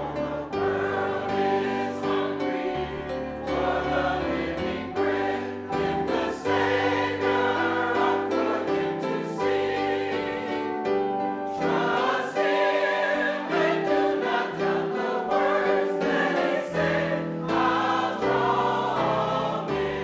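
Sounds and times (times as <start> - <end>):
choir singing held chords: 0.0 - 20.0.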